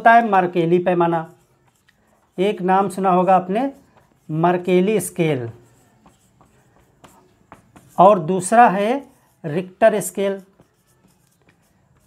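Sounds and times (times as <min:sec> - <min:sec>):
marker scratching on whiteboard: 0:00.0 - 0:12.0.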